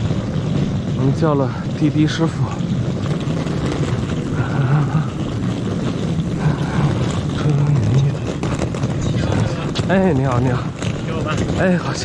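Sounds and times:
car engine rumble: 0:00.0 - 0:12.0
road noise: 0:00.0 - 0:12.0.

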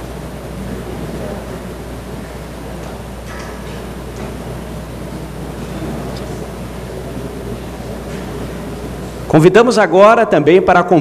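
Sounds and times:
faint murmur of audience: 0:00.0 - 0:09.4.

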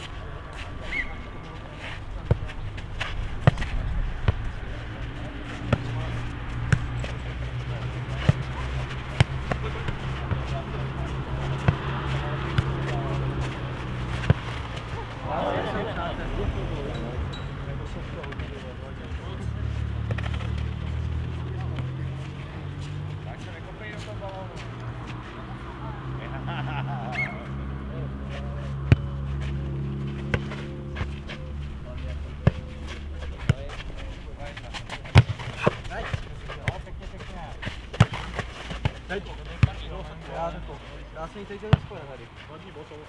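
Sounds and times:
players calling out: 0:00.0 - 0:42.2
ball thuds on clay court: 0:35.0 - 0:36.8, 0:37.6 - 0:39.0.

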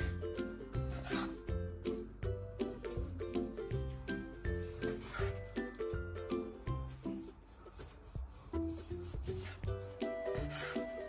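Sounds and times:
background music: 0:00.0 - 0:11.0
knife cutting meat on board: 0:00.9 - 0:01.5.

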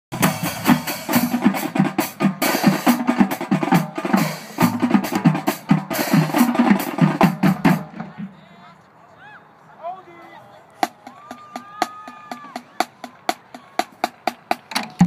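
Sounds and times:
bass drums: 0:00.1 - 0:08.3
snare drums: 0:00.1 - 0:08.4, 0:10.8 - 0:15.0.

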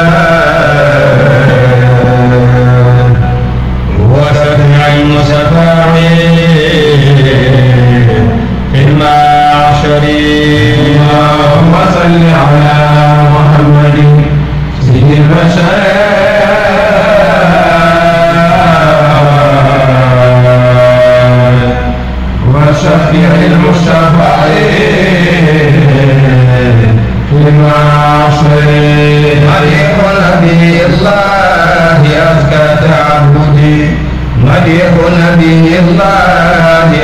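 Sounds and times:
men chanting in unison: 0:00.0 - 0:37.0.

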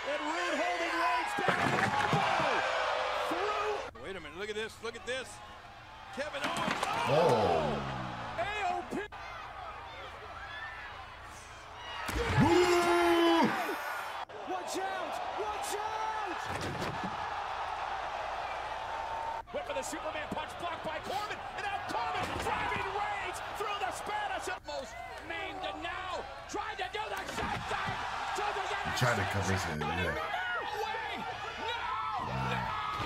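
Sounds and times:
noisy arena crowd: 0:00.0 - 0:33.0
commentators calling the action: 0:19.4 - 0:32.8.

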